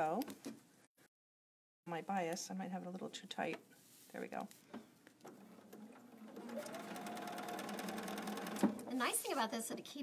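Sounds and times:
sewing machine stitching: 5.2 - 8.9.

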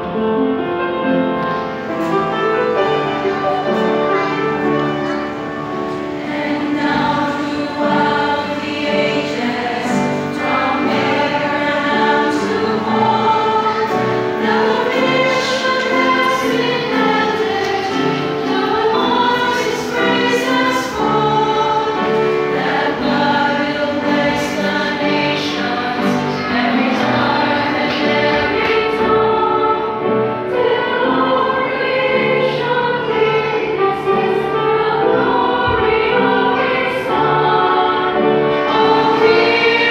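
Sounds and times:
women's choir singing: 0.0 - 39.9.

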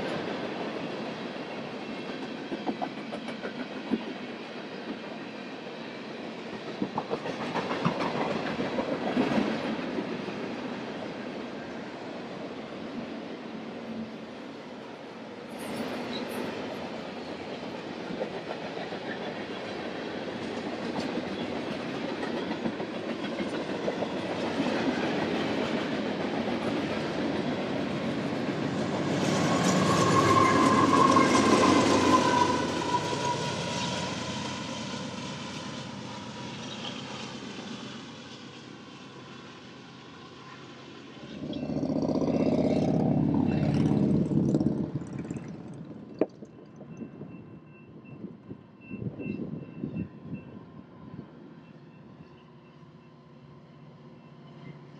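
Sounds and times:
diesel locomotive engine: 0.0 - 54.9.

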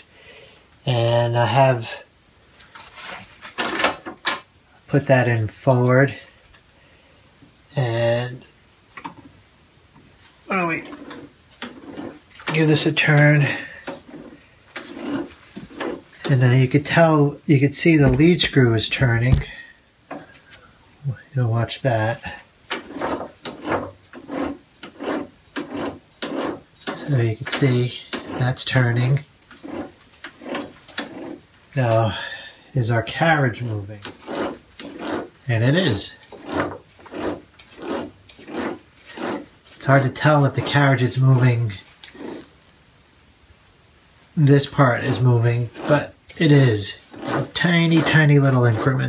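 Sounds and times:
dry rasping rub of lathe: 10.8 - 16.4, 22.7 - 31.4, 33.4 - 42.6, 44.7 - 49.0.

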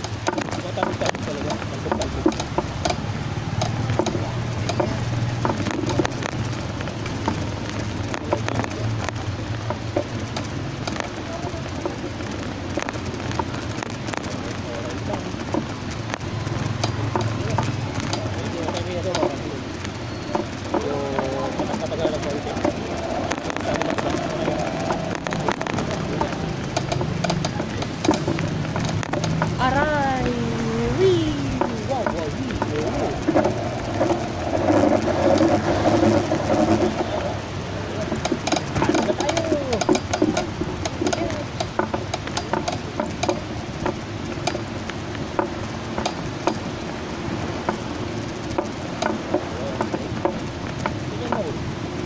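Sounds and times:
rattling clicks: 0.0 - 30.0, 31.4 - 51.8
road and wind noise: 0.0 - 52.0
small motorcycle engine running: 0.0 - 52.0.

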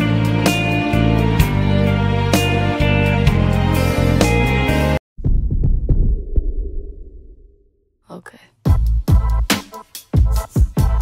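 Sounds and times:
muffled bass-heavy music: 8.7 - 11.0.

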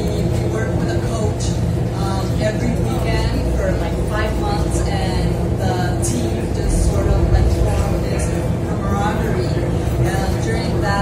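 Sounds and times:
low room rumble: 0.0 - 11.0.

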